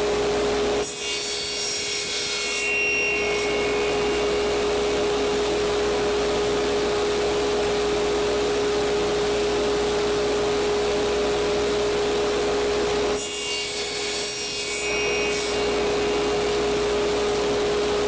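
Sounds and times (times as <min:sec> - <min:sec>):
table saw whining: 0:00.0 - 0:18.0
saw blade cutting wood: 0:00.8 - 0:06.0, 0:13.2 - 0:17.8.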